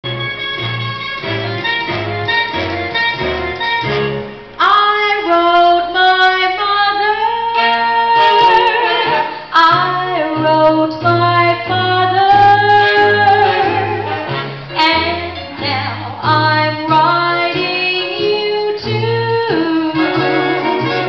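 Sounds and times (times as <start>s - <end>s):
swing band accompaniment: 0.0s - 21.0s
woman singing with vibrato: 4.6s - 20.9s.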